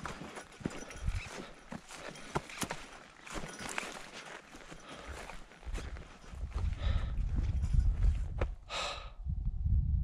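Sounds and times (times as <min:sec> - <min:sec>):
wind buffeting microphone: 0:00.0 - 0:01.5, 0:05.1 - 0:10.0
footsteps crunching on dry leaves: 0:00.0 - 0:07.4.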